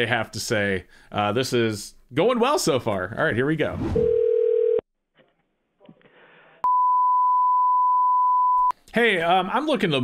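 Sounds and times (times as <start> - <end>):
telephone ringback tone: 4.0 - 4.8.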